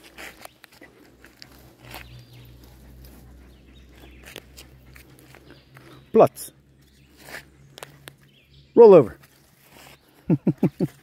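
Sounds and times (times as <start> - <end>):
footsteps on gravel: 0.0 - 6.1, 6.8 - 8.3, 9.0 - 11.0.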